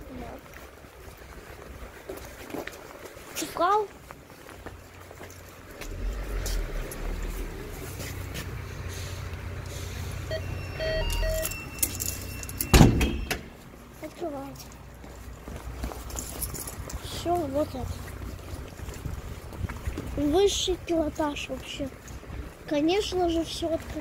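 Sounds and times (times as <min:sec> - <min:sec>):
low handling rumble: 0:04.7 - 0:24.0
short electronic beeps: 0:10.2 - 0:13.4
door lock clunk: 0:11.1 - 0:13.6.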